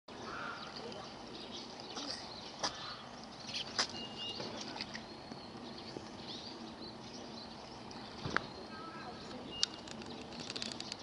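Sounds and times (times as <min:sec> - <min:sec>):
small birds chirping: 0:00.1 - 0:11.0.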